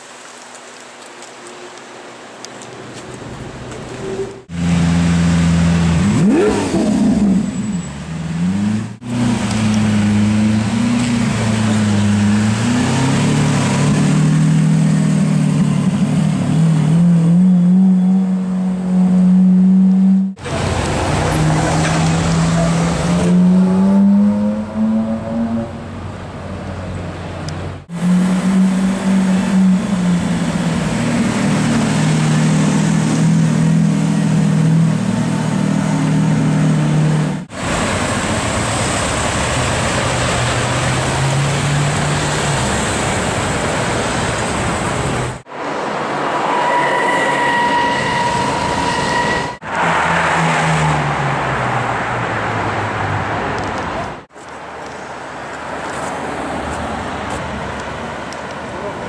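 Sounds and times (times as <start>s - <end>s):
sports car engines in traffic: 1.6s - 46.9s, 49.2s - 59.0s.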